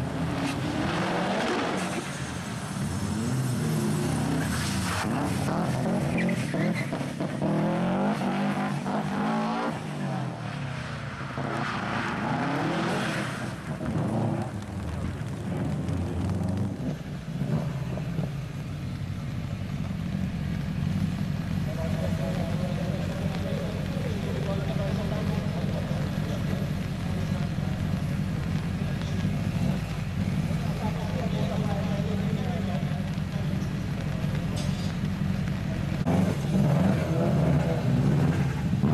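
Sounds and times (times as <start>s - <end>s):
rally car engine revving: 0.0s - 18.7s, 19.6s - 38.9s.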